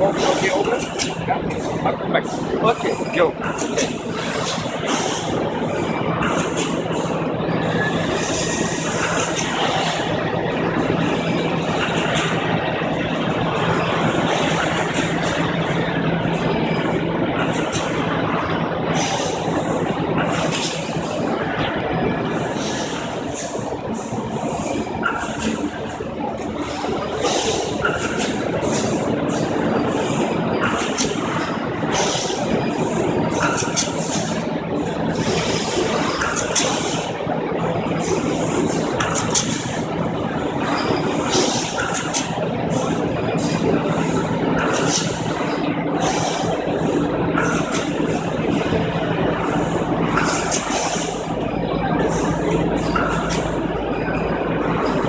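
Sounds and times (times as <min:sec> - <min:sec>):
machinery hum and din: 0:00.0 - 0:55.0.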